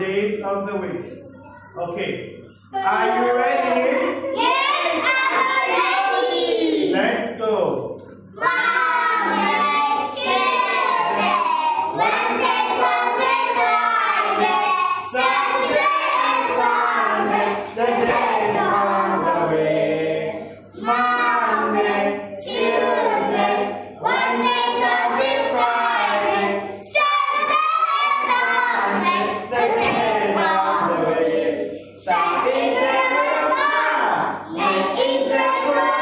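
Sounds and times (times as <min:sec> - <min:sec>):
children singing together: 0:02.8 - 0:06.9, 0:08.2 - 0:36.0.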